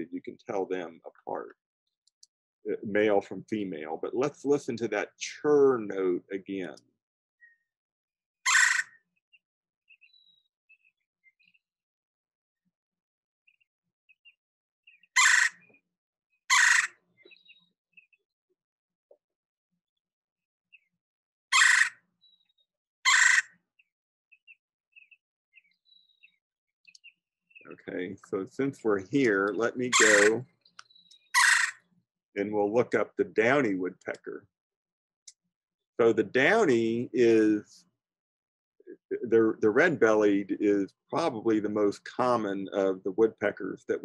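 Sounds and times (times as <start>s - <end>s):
woodpecker rolling churr call: 8.4s - 9.0s, 14.9s - 15.7s, 16.5s - 18.1s, 21.5s - 26.4s, 29.4s - 32.0s
other birds chirping: 8.4s - 11.7s, 13.5s - 18.4s, 20.7s - 32.8s.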